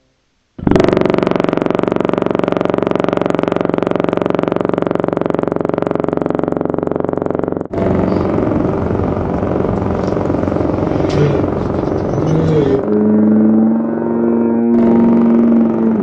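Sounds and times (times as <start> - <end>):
city street traffic: 7.7 - 16.0.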